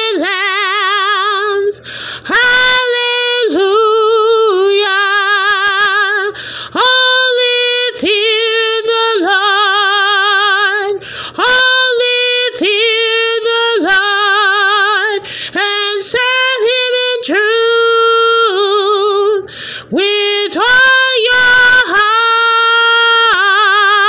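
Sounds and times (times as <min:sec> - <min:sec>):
woman singing unaccompanied: 0:00.0 - 0:24.0.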